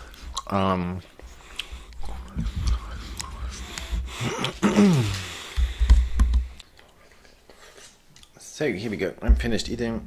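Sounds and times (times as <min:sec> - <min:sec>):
gum chewing mouth clicks: 0:00.1 - 0:00.5, 0:01.5 - 0:07.0
man humming: 0:02.1 - 0:05.4.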